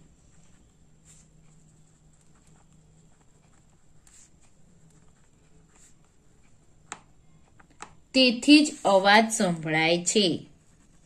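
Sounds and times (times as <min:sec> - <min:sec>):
faint low hum: 0:00.0 - 0:11.0
pen scratching on paper: 0:00.1 - 0:06.6, 0:10.5 - 0:11.0.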